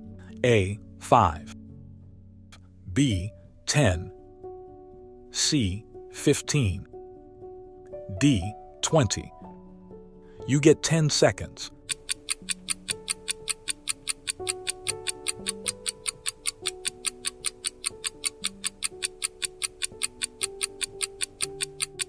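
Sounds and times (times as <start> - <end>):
soft background music: 0.0 - 22.0
clock ticking rapidly: 11.8 - 22.0.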